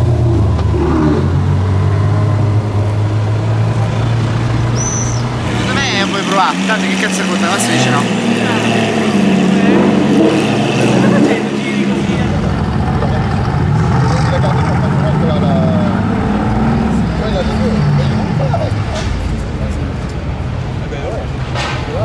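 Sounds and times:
sports car engine at low revs: 0.0 - 21.4
rough engine idling and blipping: 0.0 - 22.0
onlookers murmuring: 2.6 - 22.0.

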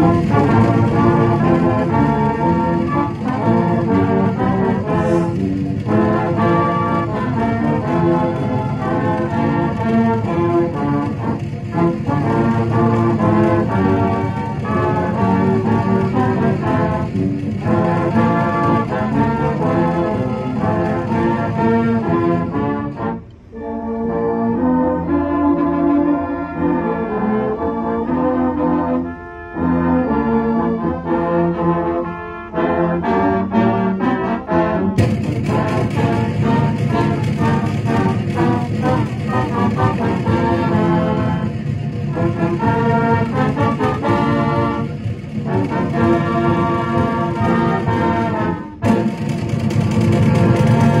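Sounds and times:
marching band brass playing: 0.0 - 51.0.

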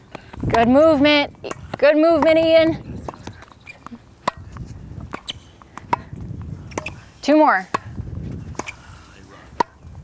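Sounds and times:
tennis balls struck by rackets: 0.0 - 10.0.

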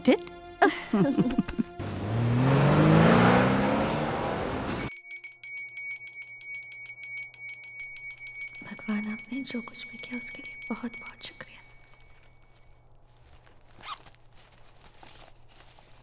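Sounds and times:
car engine revving: 1.8 - 4.9
hand bell ringing rapidly: 4.8 - 12.3.

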